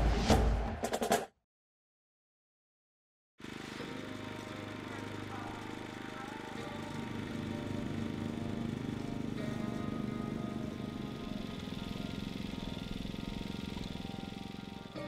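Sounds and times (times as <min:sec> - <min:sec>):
background music: 0:03.4 - 0:15.0
small engine running: 0:03.4 - 0:15.0.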